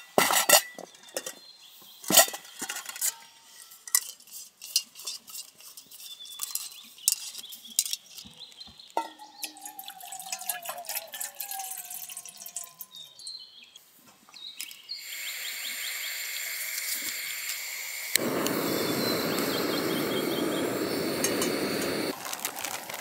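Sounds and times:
water pouring into metal pot: 9.4s - 13.1s
gas burner rushing: 15.0s - 23.0s
gas stove hissing: 15.0s - 23.0s
stove igniter click: 16.7s - 22.1s.

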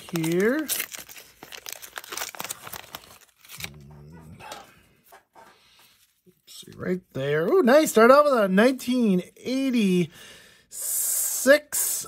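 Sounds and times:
paper wrapping crinkling and tearing: 0.0s - 4.0s.

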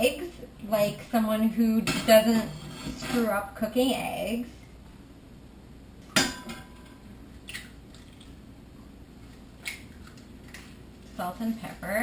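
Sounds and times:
steady room hum: 0.0s - 12.0s
metallic cookware clink: 6.1s - 7.0s.

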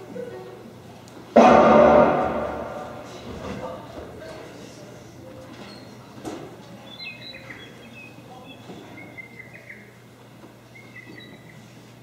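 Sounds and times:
low electrical hum: 0.0s - 12.0s
birds chirping and whistling: 6.8s - 10.0s, 10.6s - 11.8s.

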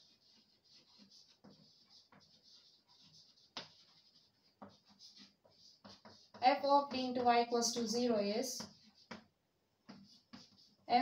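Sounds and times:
chalk scratching on blackboard: 0.0s - 11.0s.

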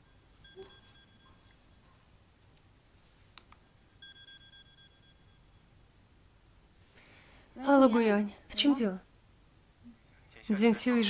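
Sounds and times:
phone ringing beep tone: 0.0s - 1.6s, 3.8s - 5.7s.

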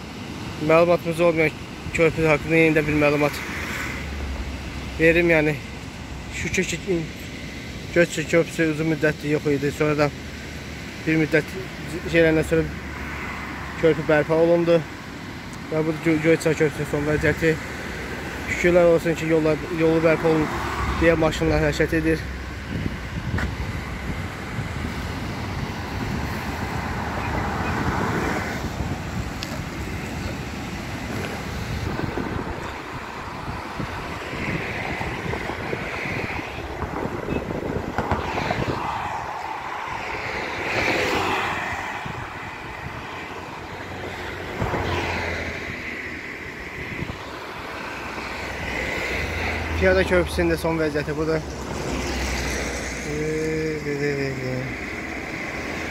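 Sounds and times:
cars and trucks passing: 0.0s - 55.9s
wind buffeting microphone: 21.2s - 50.2s.

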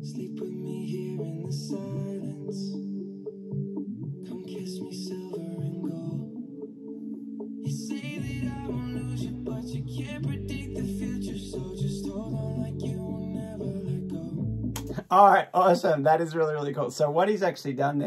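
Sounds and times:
man singing: 0.0s - 2.8s, 4.3s - 6.2s, 7.7s - 15.0s
sustained keyboard chords: 0.0s - 15.1s
deep bass: 8.2s - 15.1s.

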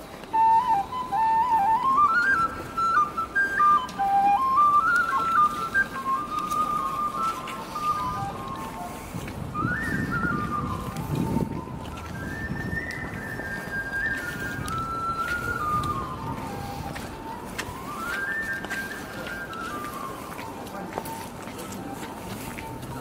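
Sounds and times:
low street noise: 0.0s - 23.0s
tin whistle melody: 0.2s - 21.3s.

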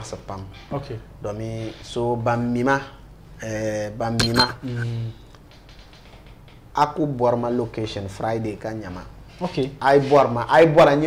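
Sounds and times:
metallic clink: 4.2s - 4.7s.

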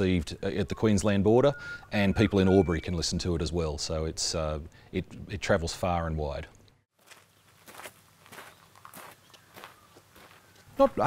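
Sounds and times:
footsteps on gravel: 6.9s - 11.0s.

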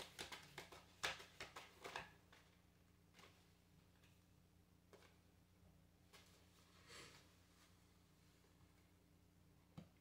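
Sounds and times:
cards being shuffled by hand: 0.0s - 4.1s.

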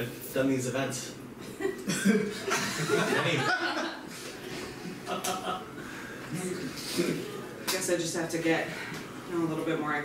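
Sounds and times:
audience laughing: 2.5s - 4.1s.

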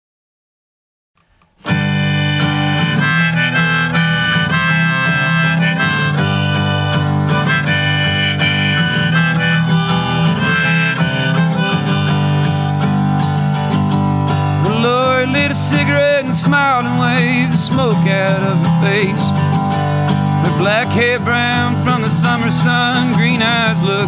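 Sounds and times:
acoustic guitar strumming: 1.4s - 24.0s
harmonica: 1.6s - 24.0s.

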